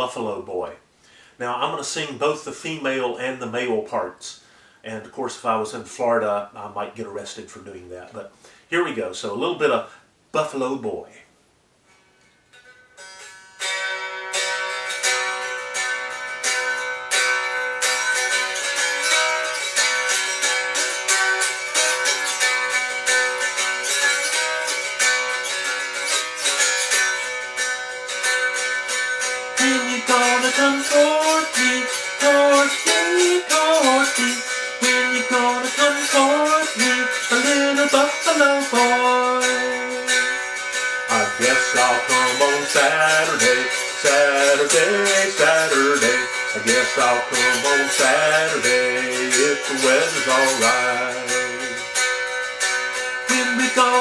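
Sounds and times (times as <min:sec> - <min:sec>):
mountain dulcimer melody: 0:12.5 - 0:54.0.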